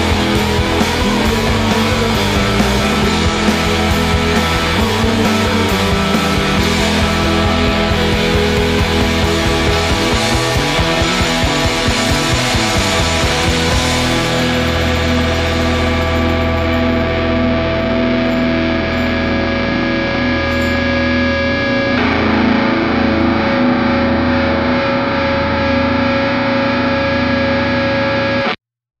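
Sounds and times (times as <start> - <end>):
distorted electric guitar chord: 0.0 - 28.6.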